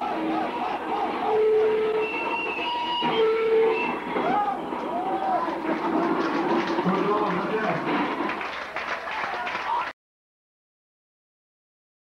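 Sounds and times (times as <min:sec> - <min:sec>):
crowd shouting: 0:00.0 - 0:09.9
high whistle: 0:01.3 - 0:04.5.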